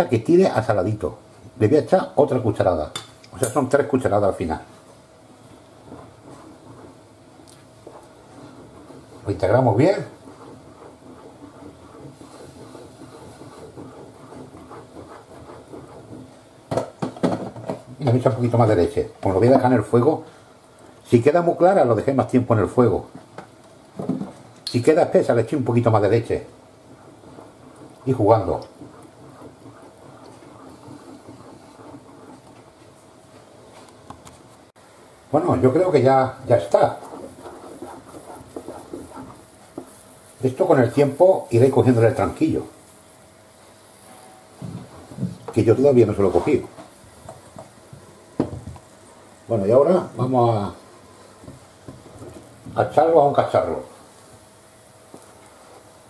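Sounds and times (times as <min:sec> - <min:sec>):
spatula stirring thick sauce in pan: 0:03.6 - 0:20.4, 0:21.2 - 0:34.2, 0:35.5 - 0:56.0.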